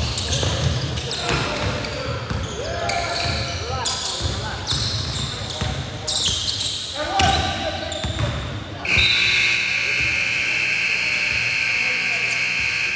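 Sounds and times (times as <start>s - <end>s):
players' voices: 0.0s - 12.9s
basketball bouncing on gym floor: 8.0s - 9.0s
scoreboard buzzer long tone: 8.9s - 12.9s.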